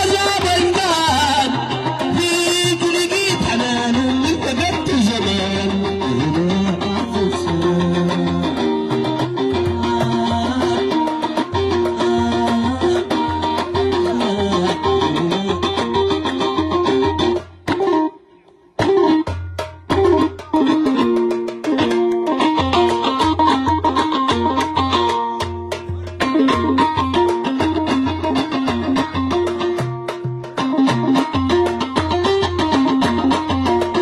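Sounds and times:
plucked string melody: 0.0s - 34.0s.

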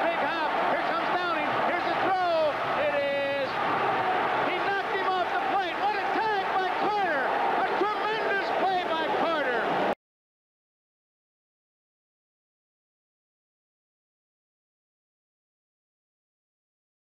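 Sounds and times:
man giving sports commentary: 0.0s - 10.0s.

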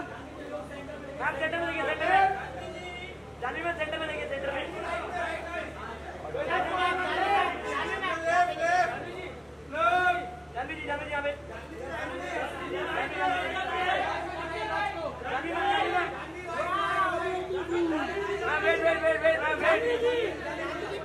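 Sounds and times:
voices calling out and talking: 0.0s - 21.0s.

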